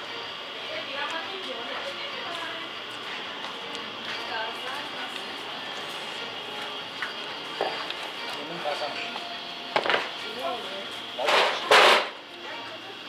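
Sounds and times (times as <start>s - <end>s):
faint chatter: 0.0s - 13.0s.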